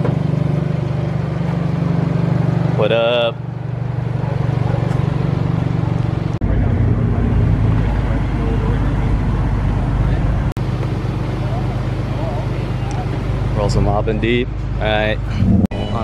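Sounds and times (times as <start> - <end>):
car engines idling: 0.0 - 16.0.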